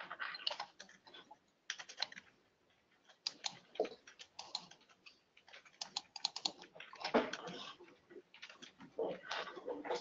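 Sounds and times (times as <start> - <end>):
typing on computer keyboard: 0.0 - 8.9.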